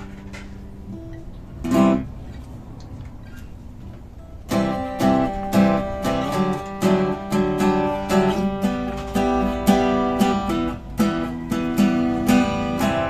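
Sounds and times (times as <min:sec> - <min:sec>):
acoustic guitar chords: 0:00.0 - 0:13.0.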